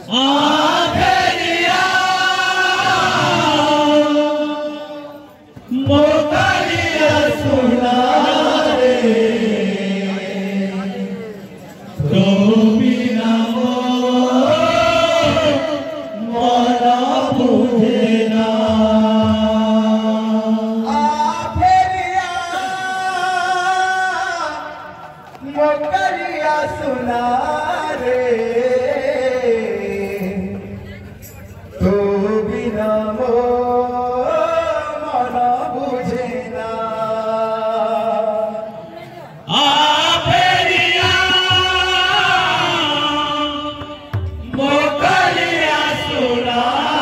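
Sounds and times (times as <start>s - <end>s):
men chanting together: 0.0s - 5.0s, 5.7s - 10.8s, 12.0s - 21.6s, 39.5s - 47.0s
low drum beats: 40.3s - 46.1s.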